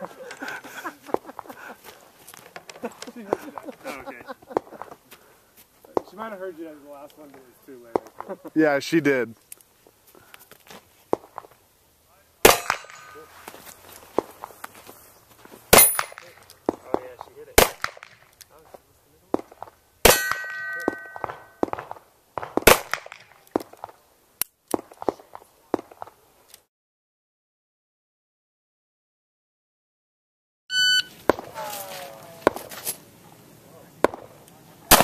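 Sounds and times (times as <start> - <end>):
handgun shots: 12.4 - 13.2, 17.6 - 18.2, 20.1 - 23.3
steel targets ringing: 12.4 - 13.5, 15.7 - 16.4, 20.0 - 21.8.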